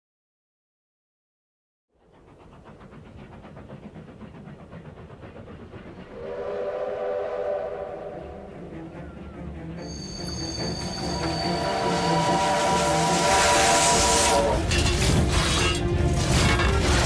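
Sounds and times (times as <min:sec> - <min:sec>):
steam locomotive clatter: 0:02.0 - 0:17.0
steam whistle chord: 0:06.2 - 0:15.9.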